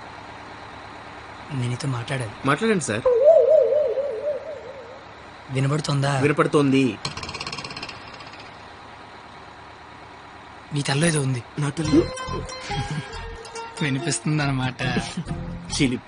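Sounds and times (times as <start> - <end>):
bus interior hum: 0.0 - 16.0.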